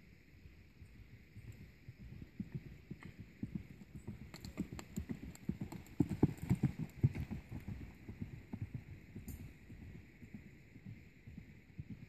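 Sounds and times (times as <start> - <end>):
horse hoofbeats on soft dirt: 0.4 - 12.0.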